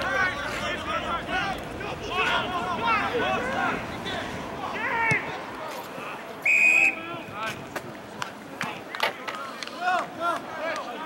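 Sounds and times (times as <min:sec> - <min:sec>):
players and spectators shouting: 0:00.0 - 0:07.6
referee's whistle blast: 0:06.4 - 0:07.1.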